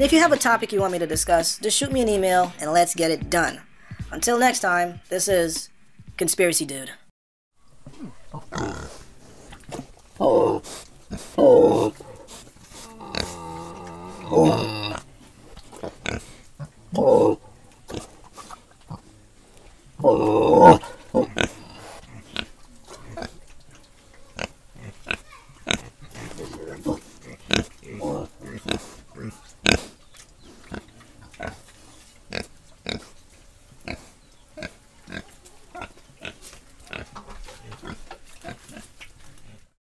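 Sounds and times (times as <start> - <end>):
pigs grunting: 7.8 - 33.1, 33.8 - 39.7.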